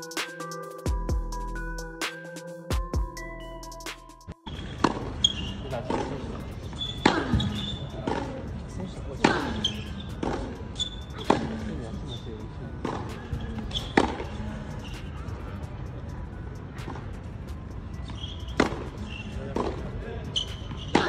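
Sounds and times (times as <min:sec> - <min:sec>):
tennis ball bouncing: 0:04.5 - 0:08.6, 0:09.2 - 0:11.8, 0:12.8 - 0:14.4, 0:18.0 - 0:21.0
racket hitting tennis ball: 0:04.6 - 0:08.5, 0:09.2 - 0:11.7, 0:12.8 - 0:14.3, 0:18.1 - 0:19.8, 0:20.4 - 0:21.0.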